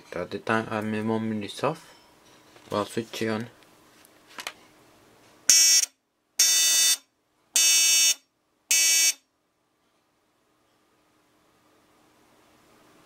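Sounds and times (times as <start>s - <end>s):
shrill buzzer beeps: 5.5s - 9.3s.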